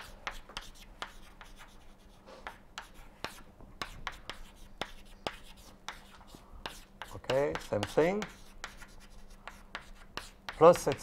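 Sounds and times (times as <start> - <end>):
chalk tapping and scratching: 0.0 - 11.0.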